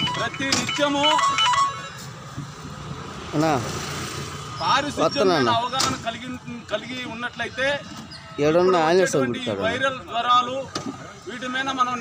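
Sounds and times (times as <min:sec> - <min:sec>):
outdoor background noise: 0:00.0 - 0:12.0
man narrating: 0:08.4 - 0:10.6.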